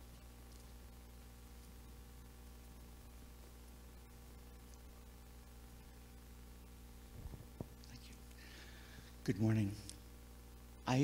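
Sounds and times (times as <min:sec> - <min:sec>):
low electrical buzz: 0:00.0 - 0:11.0
microphone handling bumps: 0:07.1 - 0:07.8.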